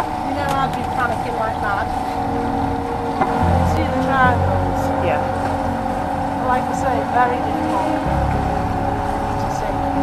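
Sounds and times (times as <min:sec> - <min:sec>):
boat engine rumbling: 0:00.0 - 0:10.0.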